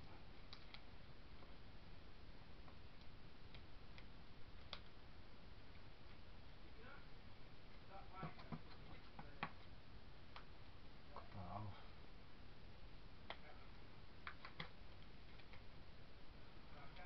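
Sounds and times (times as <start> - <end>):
clicks and taps handling paper: 8.2 - 9.7, 14.2 - 15.7.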